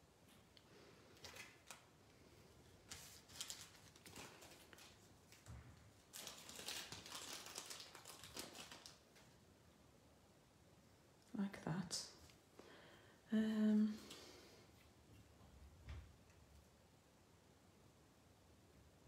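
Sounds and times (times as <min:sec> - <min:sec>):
paper rustling and scraping: 0:02.8 - 0:05.5.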